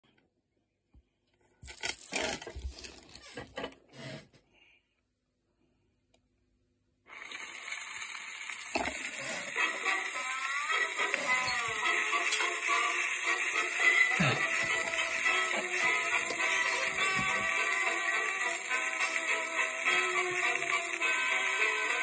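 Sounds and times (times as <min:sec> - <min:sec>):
record groove hiss and crackle: 0:09.5 - 0:22.0.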